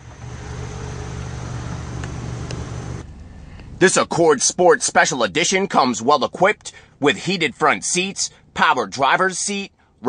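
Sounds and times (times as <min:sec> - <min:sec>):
car engine idling: 0:00.0 - 0:05.5.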